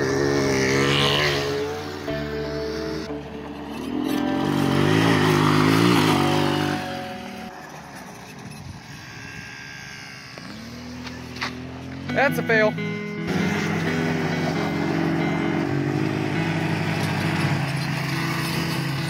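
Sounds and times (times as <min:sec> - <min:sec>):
background music: 0:00.0 - 0:08.2, 0:11.6 - 0:19.0
small engines revving: 0:00.0 - 0:19.0.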